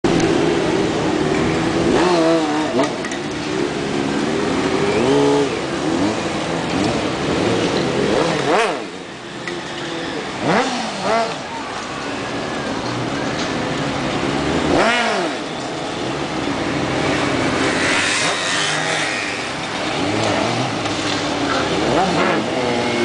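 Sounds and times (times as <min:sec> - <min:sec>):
motorcycle engine revving: 0:00.1 - 0:09.2, 0:09.9 - 0:11.5, 0:13.9 - 0:23.0.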